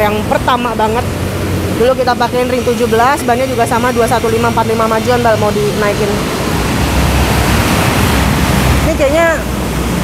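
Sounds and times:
loud steady rushing noise: 0.0s - 10.0s.

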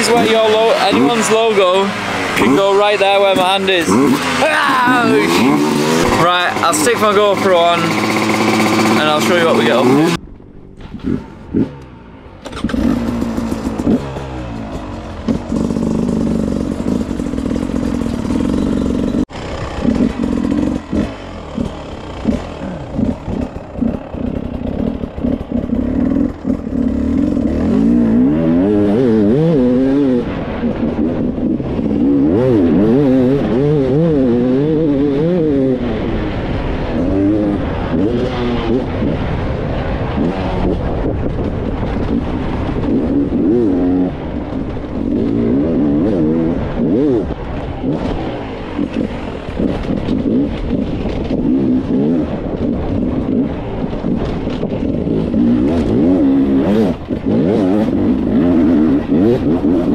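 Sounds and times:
motorcycle engine revving: 0.0s - 59.9s
knocks and clatters over rough ground: 5.8s - 35.8s, 36.4s - 59.9s.

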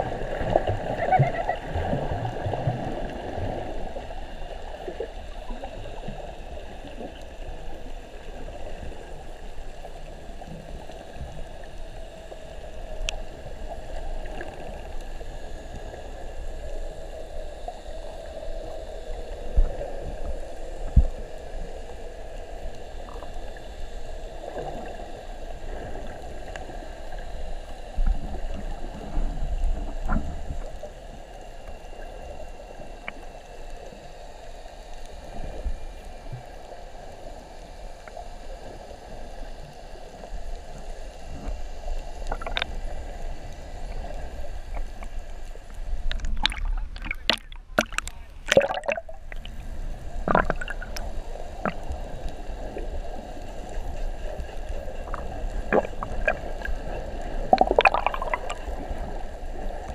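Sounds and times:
underwater water rush: 0.0s - 59.9s.

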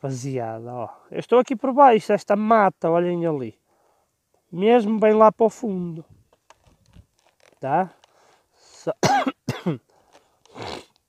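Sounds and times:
man clearing his throat: 9.0s - 9.8s
man coughing: 9.0s - 9.8s.

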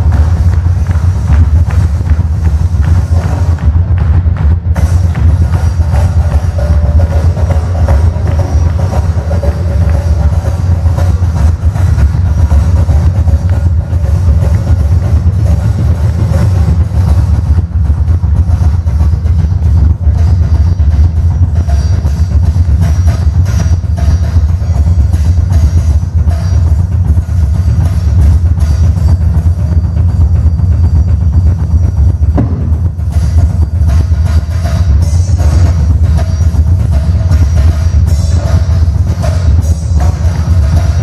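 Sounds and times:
fast double bass drum: 0.0s - 41.0s
cymbal and tom hits: 27.4s - 41.0s.

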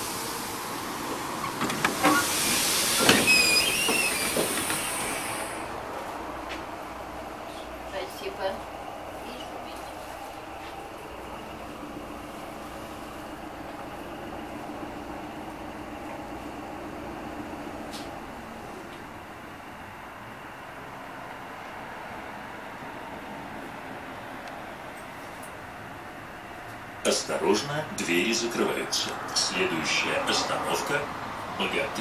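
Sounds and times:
tram rumble on rails: 0.0s - 32.0s.

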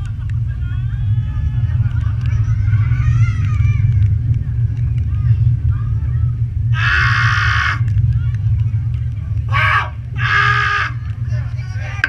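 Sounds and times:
low rumble of wind and ride: 0.0s - 12.0s.

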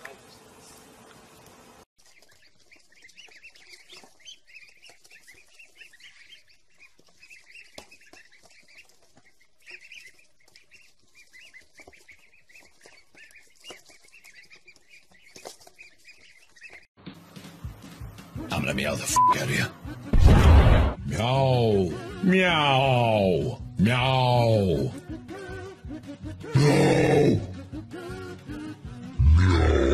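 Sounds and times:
baby chicks peeping: 2.0s - 18.5s.

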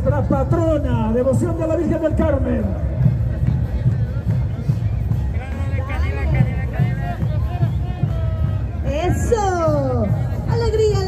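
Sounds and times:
large drums beating: 0.0s - 11.0s.

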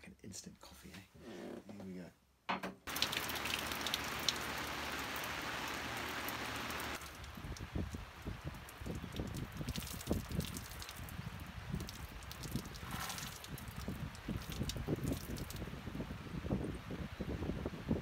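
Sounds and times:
water dripping off awning: 2.9s - 16.8s
steady rain: 2.9s - 18.0s
wind buffeting microphone: 7.1s - 18.0s.

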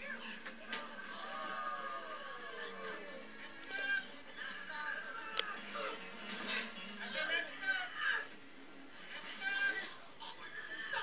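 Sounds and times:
boys shouting and yelling: 0.8s - 6.0s, 7.1s - 8.3s.

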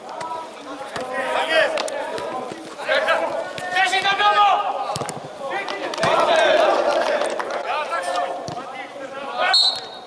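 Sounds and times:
players calling out: 0.0s - 10.0s
referee's whistle blast: 9.5s - 10.0s.

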